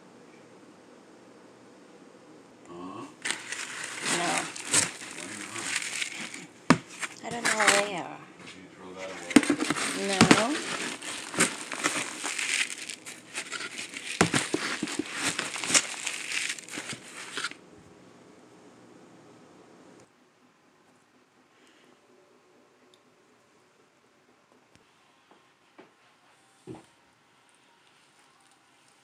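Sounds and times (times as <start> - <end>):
pots scraping through soil: 3.2 - 8.2, 8.9 - 17.6.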